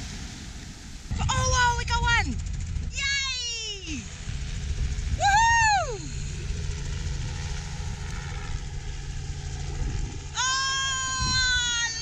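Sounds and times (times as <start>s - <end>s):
small waves washing on sand: 0.0s - 1.2s
wind rumbling on microphone: 0.0s - 12.0s.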